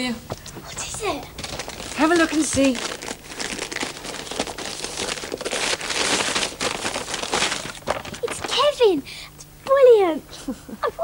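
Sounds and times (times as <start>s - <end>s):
wrapping paper tearing and crinkling: 0.6s - 8.9s.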